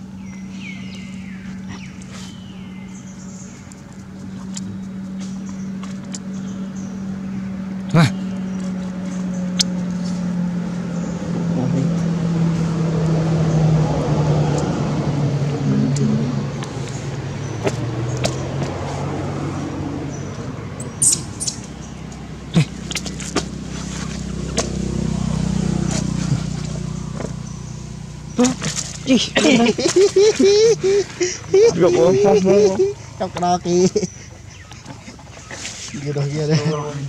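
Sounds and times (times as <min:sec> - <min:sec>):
motor engine humming: 0:00.0 - 0:37.0.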